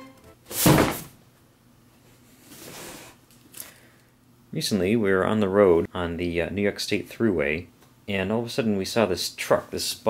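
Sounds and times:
cardboard box thunk on wooden table: 0.5 - 1.1.

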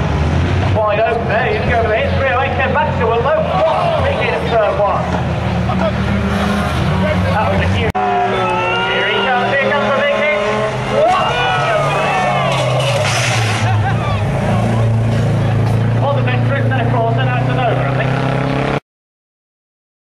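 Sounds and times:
racing car engines revving: 0.0 - 18.8.

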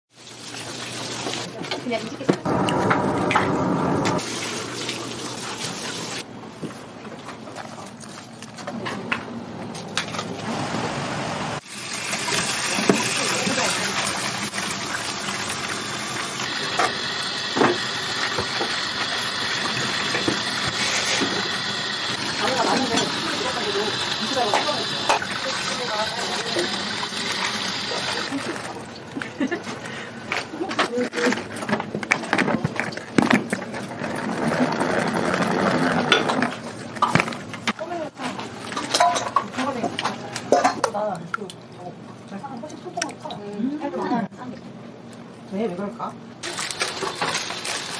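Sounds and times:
tap water running: 0.1 - 6.3, 11.6 - 29.1
salad spinner whirring: 12.2 - 28.3.

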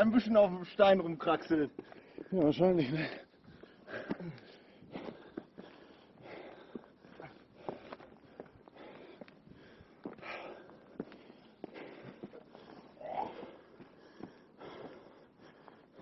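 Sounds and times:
footsteps on rock: 1.3 - 13.0
heavy breathing: 1.7 - 16.0.

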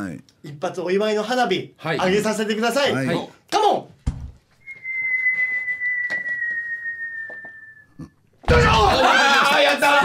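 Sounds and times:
firework launch whistle: 4.7 - 7.9.

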